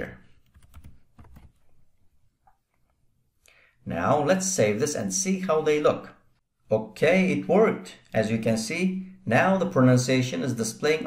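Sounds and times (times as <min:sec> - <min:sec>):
computer keyboard typing: 0:00.4 - 0:01.6.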